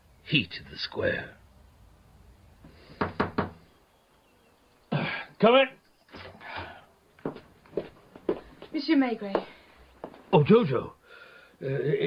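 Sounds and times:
knocks on a door: 3.0s - 3.6s.

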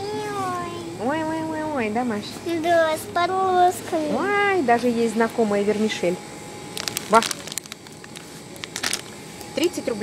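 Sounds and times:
plastic packets crinkling: 6.7s - 9.2s.

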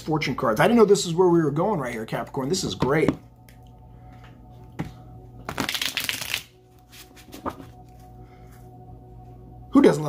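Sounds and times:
cards being shuffled: 5.5s - 8.0s.

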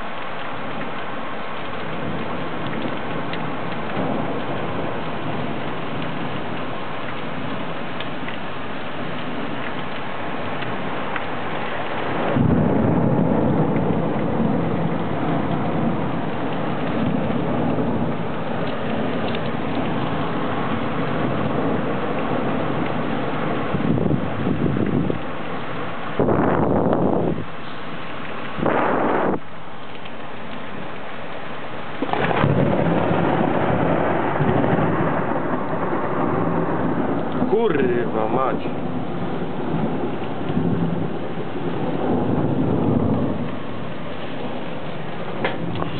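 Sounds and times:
heavy rain: 0.0s - 45.9s
rolling thunder: 1.6s - 27.6s, 28.2s - 29.6s, 31.9s - 45.9s.

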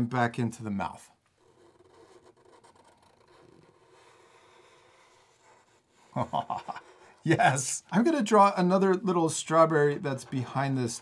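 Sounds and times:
marker scratching on paper: 1.3s - 7.3s
short laugh: 6.2s - 6.9s.

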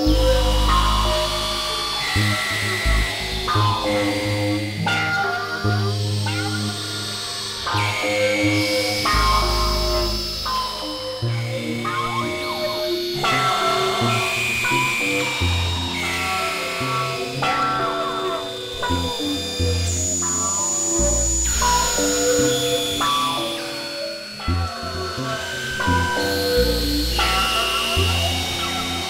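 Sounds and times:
experimental synthesizer music: 0.0s - 29.0s.

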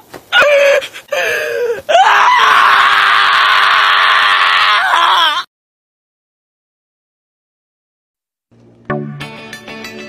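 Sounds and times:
dog screaming: 1.9s - 5.4s.

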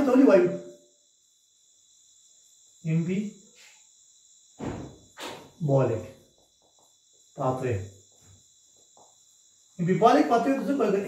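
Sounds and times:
man speaking: 0.0s - 0.6s, 2.9s - 3.3s, 5.6s - 6.2s, 7.4s - 7.9s, 9.8s - 11.0s.

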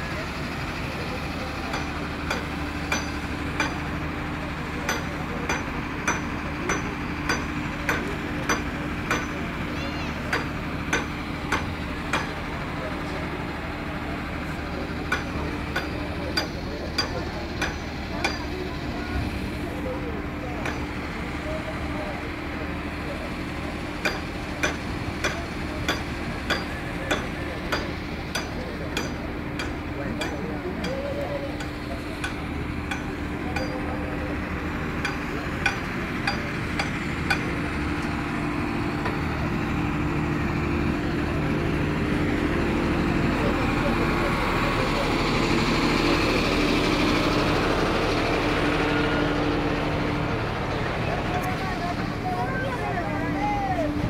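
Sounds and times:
crowd voices: 0.0s - 54.0s
vehicle engine running: 0.0s - 54.0s.

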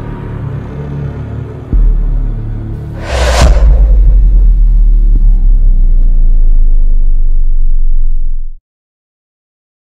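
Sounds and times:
deep cinematic rumble: 2.6s - 8.6s.

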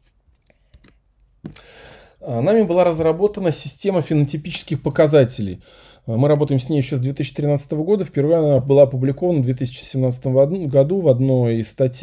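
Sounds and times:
person speaking: 0.8s - 12.0s
breath drawn in: 1.5s - 2.2s.

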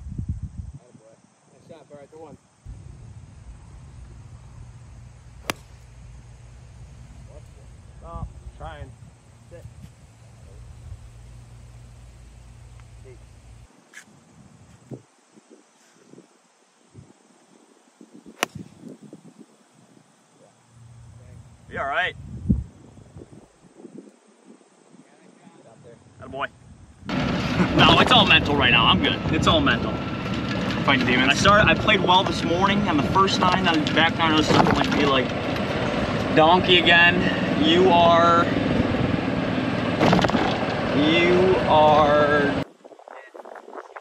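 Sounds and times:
wind rumbling on microphone: 0.0s - 1.4s, 2.2s - 44.0s
golf club striking ball: 5.4s - 6.1s, 18.4s - 18.8s.

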